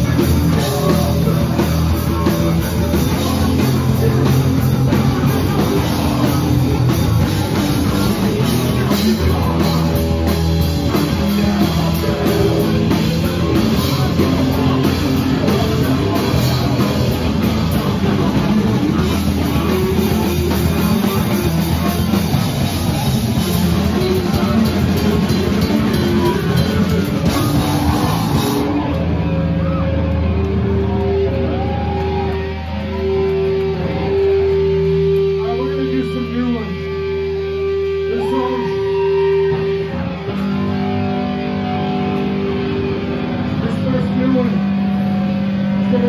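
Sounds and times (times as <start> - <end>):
crowd talking: 0.0 - 46.0
punk band playing: 0.0 - 46.0.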